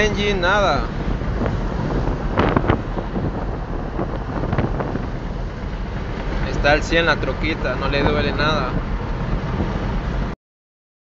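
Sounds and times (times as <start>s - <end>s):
road and wind noise: 0.0s - 10.4s
truck engine: 0.0s - 10.4s.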